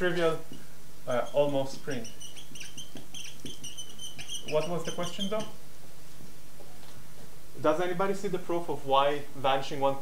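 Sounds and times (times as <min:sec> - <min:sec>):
marker squeaking on whiteboard: 0:00.3 - 0:05.6.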